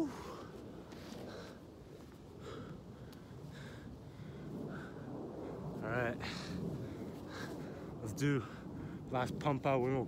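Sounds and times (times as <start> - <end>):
man breathing hard: 0.0 - 9.1.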